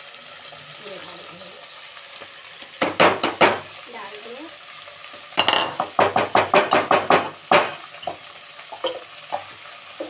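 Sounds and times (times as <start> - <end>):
rice sizzling in hot oil: 0.0 - 10.0.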